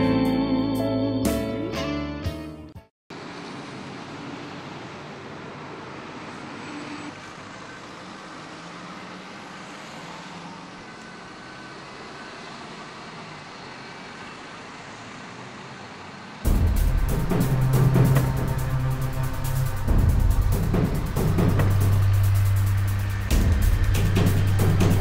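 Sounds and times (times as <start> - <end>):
loud music: 0.0 - 2.8, 16.5 - 25.0
motorway traffic rushing: 3.1 - 25.0.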